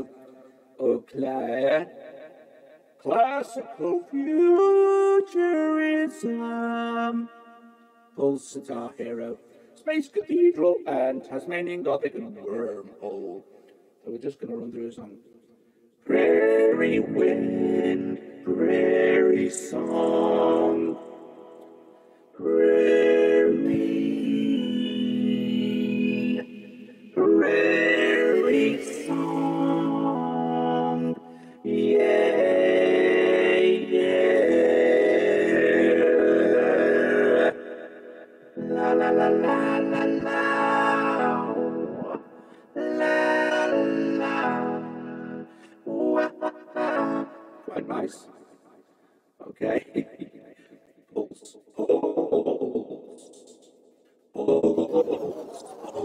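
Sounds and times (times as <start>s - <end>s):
vocoded synth tones: 54.4s - 56.0s.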